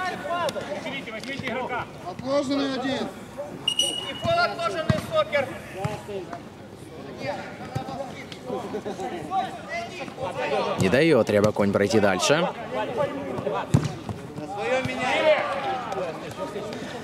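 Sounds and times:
referee's whistle blast: 0:03.7 - 0:04.5.

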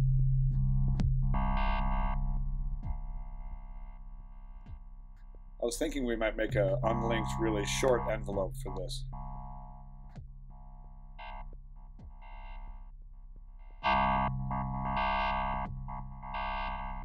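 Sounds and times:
sustained synthesizer note: 0:00.0 - 0:04.8, 0:06.0 - 0:17.0.

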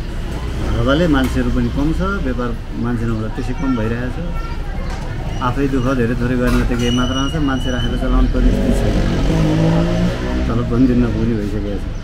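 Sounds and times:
man talking: 0:00.7 - 0:04.3, 0:05.4 - 0:12.0.

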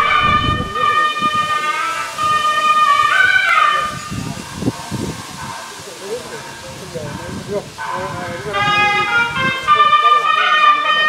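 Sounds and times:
wind instrument high note: 0:00.0 - 0:04.3, 0:08.4 - 0:11.0.

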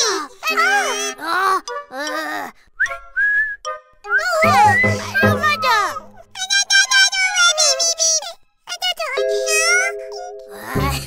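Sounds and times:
high-pitched cartoon voices: 0:00.0 - 0:02.6, 0:04.1 - 0:11.0
pulsing background music beat: 0:04.4 - 0:06.4.

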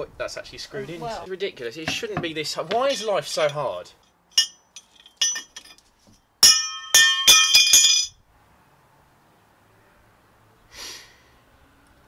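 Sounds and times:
metal parts clinking: 0:04.3 - 0:08.2.

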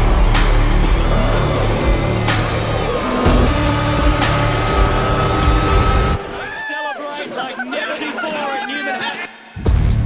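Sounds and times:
soundtrack music: 0:00.0 - 0:06.8.

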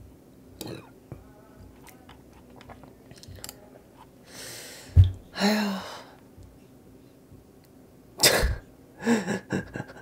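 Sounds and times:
man laughing: 0:09.0 - 0:10.0.

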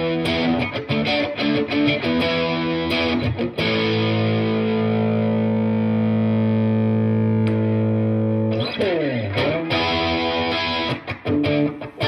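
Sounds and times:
electric guitar chord ringing: 0:00.0 - 0:12.0
picked guitar notes: 0:00.0 - 0:12.0.

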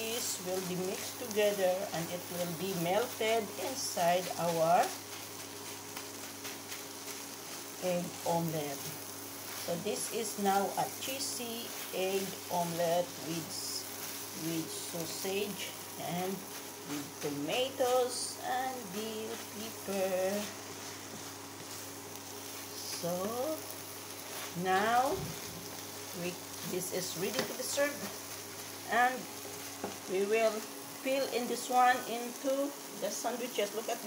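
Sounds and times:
omelette sizzling in a frying pan: 0:00.0 - 0:34.0
steady low hum: 0:00.0 - 0:34.0
wooden spatula stirring: 0:00.2 - 0:30.7.

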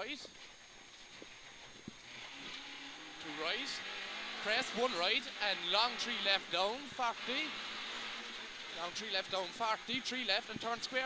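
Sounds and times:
in-car rally engine noise: 0:00.0 - 0:11.0.

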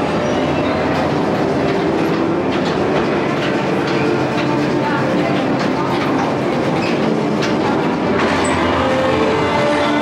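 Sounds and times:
ride cars clattering on track: 0:00.0 - 0:10.0.

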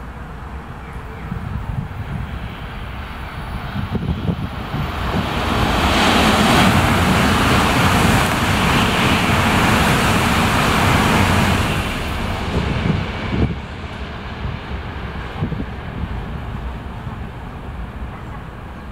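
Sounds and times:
train passing at speed: 0:00.0 - 0:18.9.

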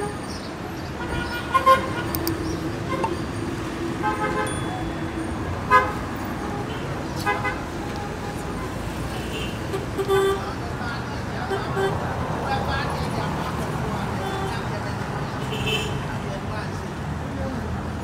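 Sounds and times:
cars passing: 0:00.0 - 0:18.0
car horn toots: 0:05.7 - 0:08.4.

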